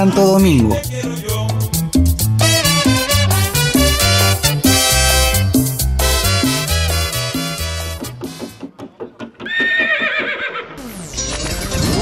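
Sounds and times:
hoofbeats: 8.3 - 10.8
horse whinny: 9.4 - 10.8.

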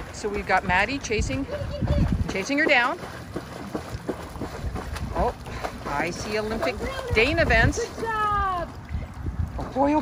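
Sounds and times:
water splashing and churning: 0.0 - 10.0
wind rumbling on microphone: 0.0 - 10.0.

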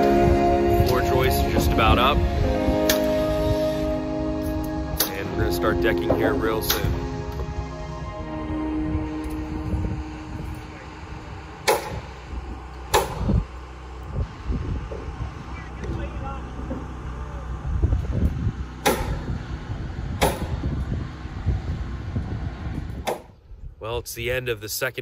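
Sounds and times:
low rumble: 0.0 - 23.8
nail gun firing: 11.7 - 12.0, 12.9 - 13.3, 18.8 - 19.2.

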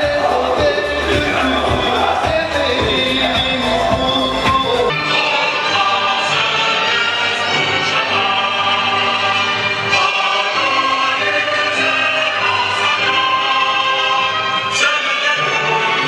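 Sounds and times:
choir singing an anthem: 0.0 - 16.0
orchestral accompaniment: 0.0 - 16.0.

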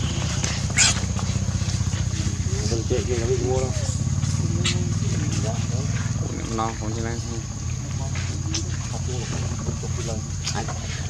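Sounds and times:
baby monkey squealing: 0.0 - 1.4
engine running with low pulsing: 0.0 - 11.0.

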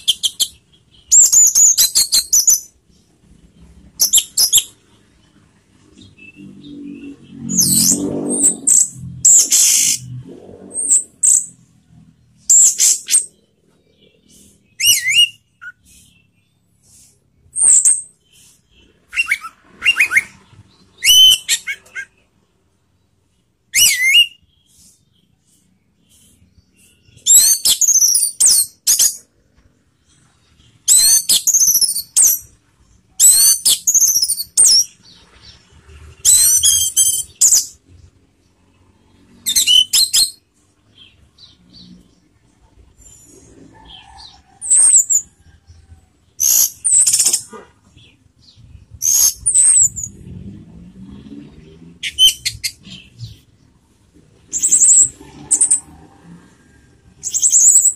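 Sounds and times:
thrush singing whistled notes: 0.0 - 2.8, 4.0 - 4.9, 5.9 - 22.3, 23.7 - 25.3, 30.8 - 32.6, 33.2 - 35.2, 39.3 - 40.4, 48.4 - 50.3, 52.0 - 53.4, 57.2 - 57.9.

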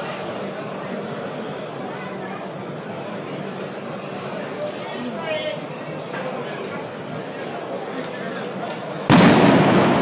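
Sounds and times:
crowd din: 0.0 - 10.0
firecracker bang: 9.1 - 10.0.

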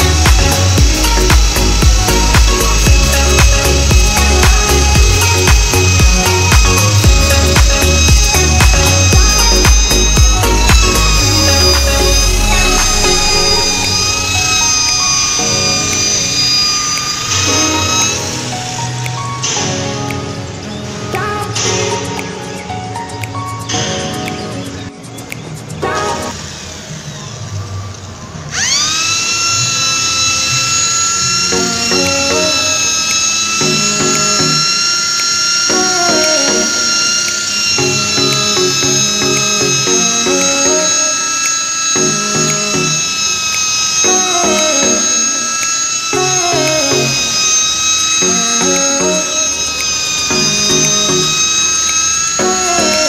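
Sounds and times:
electric polisher motor whine: 0.0 - 19.8, 25.9 - 53.0
background music: 0.0 - 53.0.

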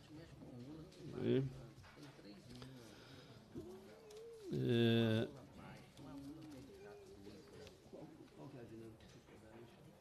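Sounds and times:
faint murmur of voices: 0.0 - 10.0.

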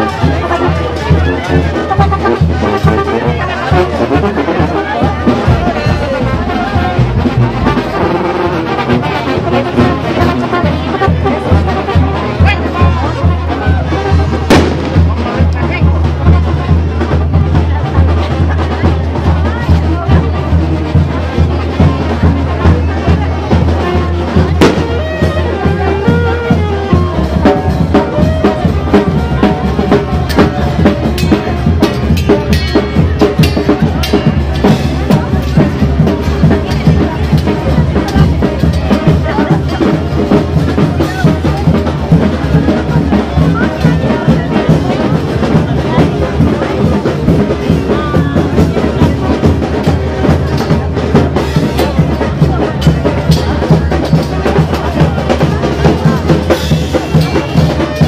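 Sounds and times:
band music with drum beat: 0.0 - 58.0
crowd voices: 0.0 - 58.0.

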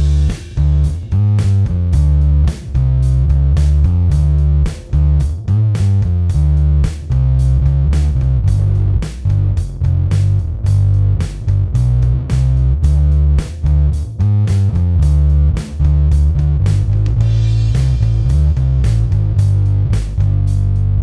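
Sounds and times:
fuzz-distorted electric bass riff: 0.0 - 21.0.

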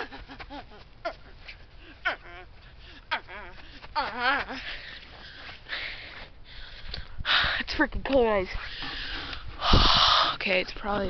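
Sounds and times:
person breathing out hard: 4.5 - 7.7, 8.6 - 10.4.

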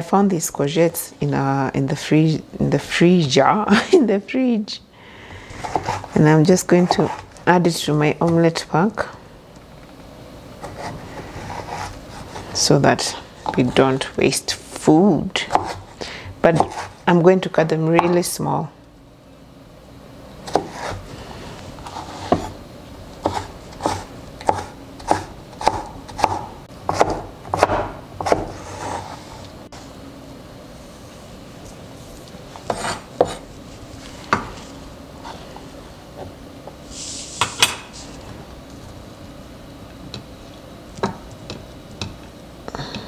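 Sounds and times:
blade scraping cutting board: 5.5 - 6.2, 6.8 - 7.3, 10.6 - 12.6, 15.4 - 17.0, 20.5 - 21.2, 21.8 - 22.6, 23.2 - 29.5, 32.2 - 33.5
knife chopping on wooden board: 15.4 - 15.8, 16.6 - 16.9, 23.2 - 29.0, 32.6 - 33.4.

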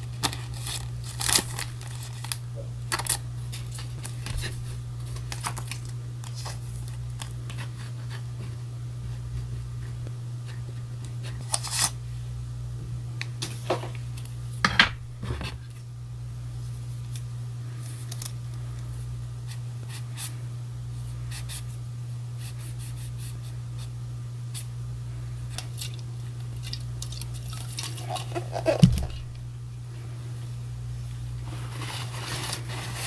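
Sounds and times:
steady low hum: 0.0 - 33.0
scissors snipping paper: 0.1 - 7.6, 11.3 - 12.0.

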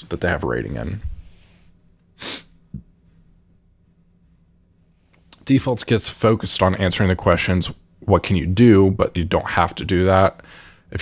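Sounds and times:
person's sharp burst of breath: 2.2 - 2.6.

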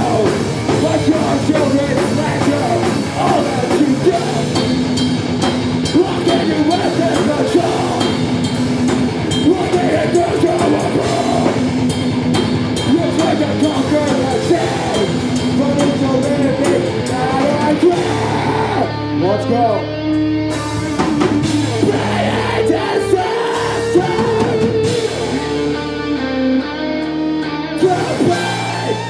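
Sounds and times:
heavy metal band playing: 0.0 - 29.0.

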